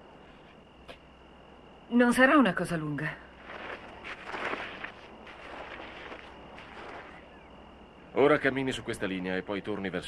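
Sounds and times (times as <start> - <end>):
outdoor background noise: 0.0 - 10.0
footsteps on gravel: 3.4 - 7.4.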